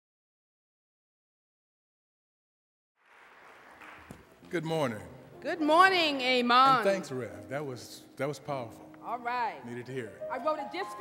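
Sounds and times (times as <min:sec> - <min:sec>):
congregation applause: 0:03.0 - 0:05.1.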